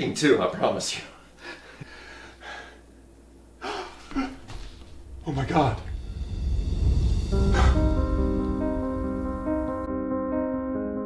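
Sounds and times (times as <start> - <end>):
man breathing softly: 1.3 - 2.9.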